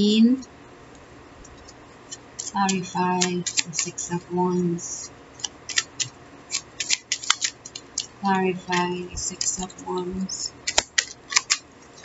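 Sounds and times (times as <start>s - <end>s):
playing cards shuffling: 1.5s - 4.2s, 5.4s - 12.0s.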